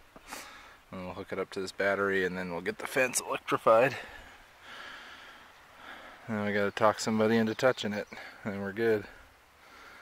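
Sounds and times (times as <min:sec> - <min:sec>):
soft breath: 0:03.9 - 0:06.3, 0:09.6 - 0:10.0.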